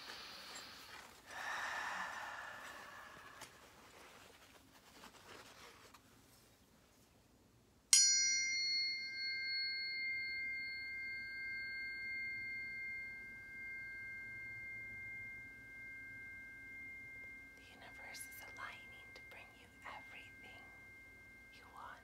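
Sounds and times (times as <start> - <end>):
tuning fork clang: 7.9 - 22.0
tuning forks ringing high tones: 8.0 - 18.5, 19.1 - 22.0.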